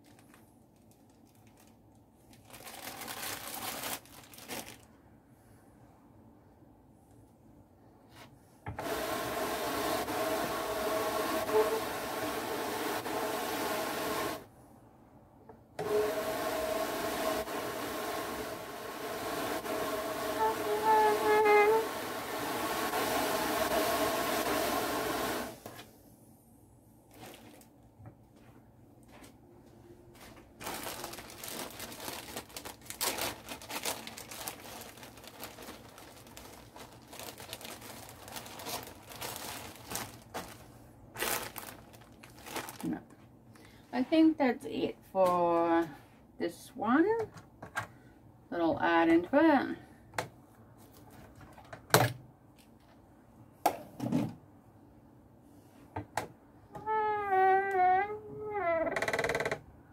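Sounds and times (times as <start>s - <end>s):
plastic bag crinkling: 0.0s - 5.0s, 27.1s - 27.8s, 30.6s - 43.1s.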